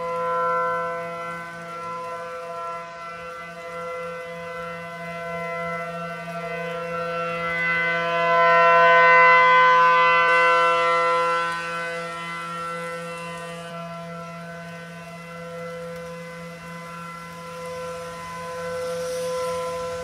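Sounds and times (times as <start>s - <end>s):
warning siren steady tone: 0.0s - 20.0s.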